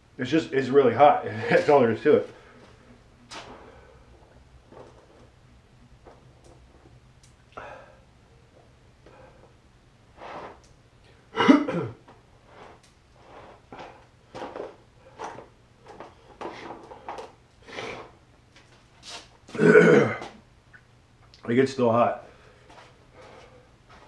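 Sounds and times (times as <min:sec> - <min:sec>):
man burping: 0:11.4 - 0:12.0, 0:19.5 - 0:20.4
man clearing his throat: 0:11.4 - 0:12.0, 0:19.5 - 0:20.4.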